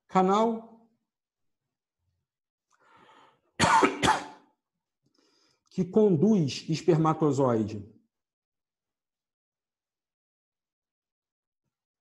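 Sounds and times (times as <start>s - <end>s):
man coughing: 3.6s - 4.5s.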